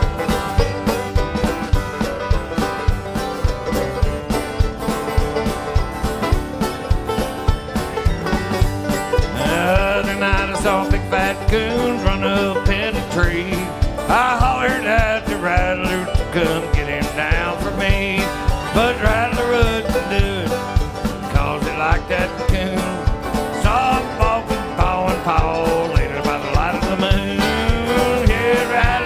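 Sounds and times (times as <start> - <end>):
banjo: 0.0 - 29.0
sliding lead line: 0.0 - 29.0
strummed acoustic guitar: 0.0 - 29.0.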